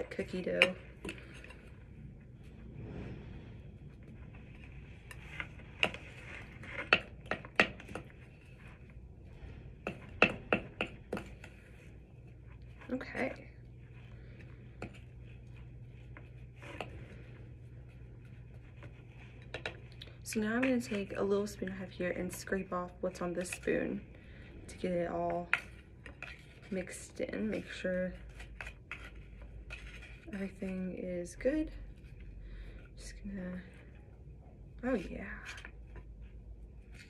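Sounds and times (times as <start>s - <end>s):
spoon scraping slime: 0.0s - 2.7s, 3.6s - 34.2s.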